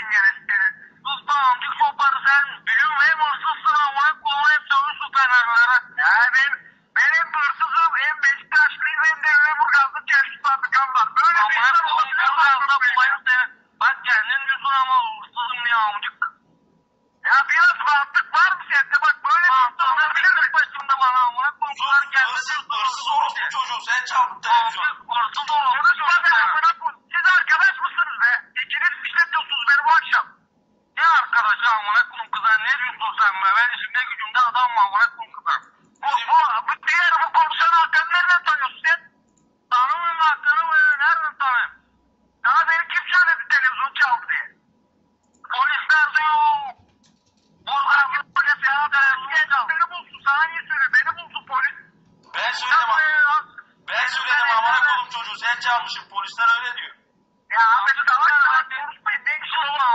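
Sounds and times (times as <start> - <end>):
voices over telephone line: 0.0 - 16.4, 17.2 - 44.6, 45.4 - 46.8, 47.6 - 59.9.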